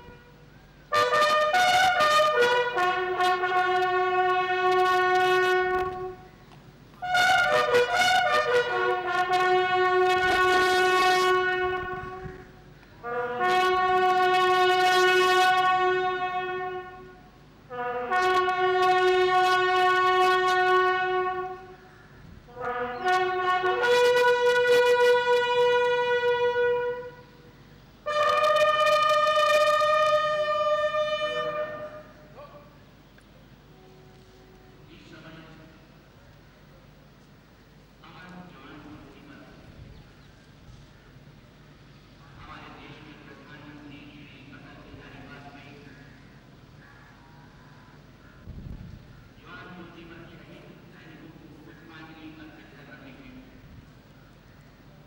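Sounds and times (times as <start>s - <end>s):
military bugles holding a note: 0.0s - 55.0s.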